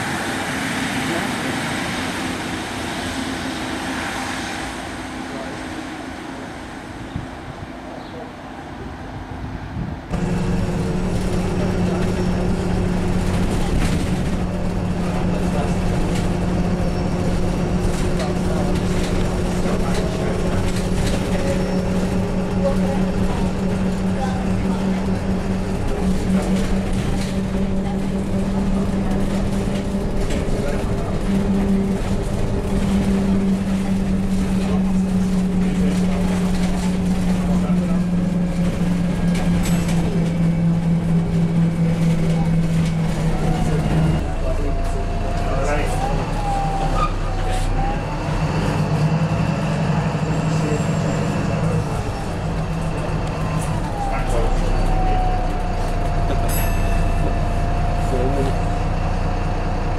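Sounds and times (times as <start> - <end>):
bus engine hum: 0.0 - 59.9
continuous rumble: 0.0 - 59.9.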